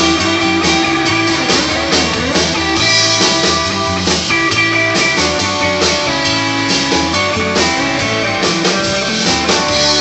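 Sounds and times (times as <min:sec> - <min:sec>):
bass guitar: 0:00.0 - 0:10.0
drum kit beat: 0:00.0 - 0:10.0
electric guitar: 0:00.0 - 0:10.0.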